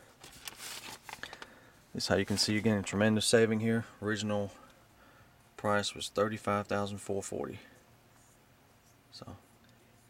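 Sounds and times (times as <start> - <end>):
paper rustling: 0.2 - 1.5, 2.2 - 2.7
plastic bag crinkling: 0.2 - 1.5.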